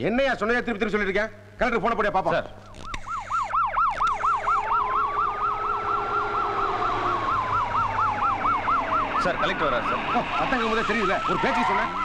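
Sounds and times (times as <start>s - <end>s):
siren slow wail: 2.6s - 12.0s
vehicle siren fast warble: 2.7s - 12.0s.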